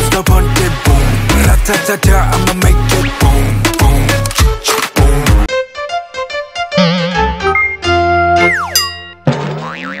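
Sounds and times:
cartoon falling glide: 0:06.8 - 0:07.5.

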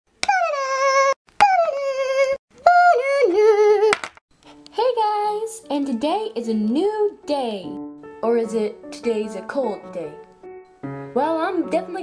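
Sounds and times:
high-pitched voice singing: 0:00.2 - 0:04.0.

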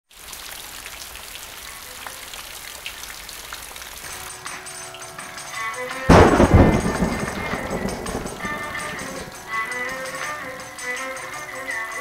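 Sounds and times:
rain drops ticking on wet surface: 0:00.1 - 0:12.0.

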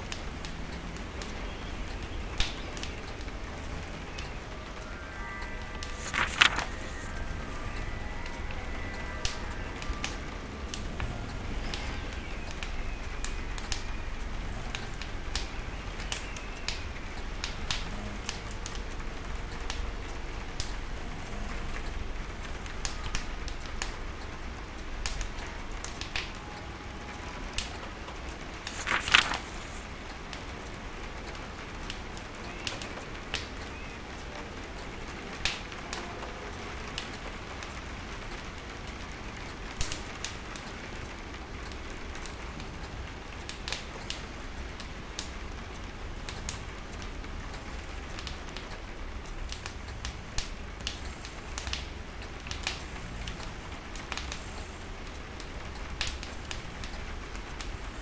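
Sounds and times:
rain on a window: 0:00.0 - 0:58.0
logs crackling and popping in stove: 0:07.8 - 0:26.5, 0:41.2 - 0:58.0.

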